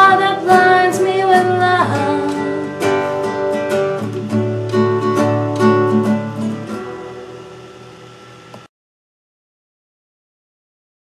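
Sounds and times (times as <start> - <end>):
acoustic guitar chord ringing: 0.0 - 8.7.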